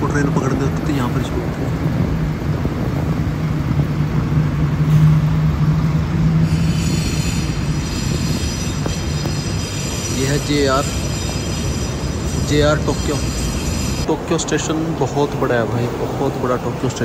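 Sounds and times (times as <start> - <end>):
heavy vehicle engine hum: 0.0 - 17.0
high whining tones: 4.9 - 14.3.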